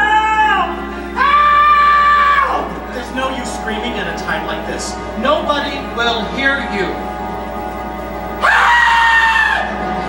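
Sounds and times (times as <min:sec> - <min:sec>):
music playing: 0:00.0 - 0:10.0.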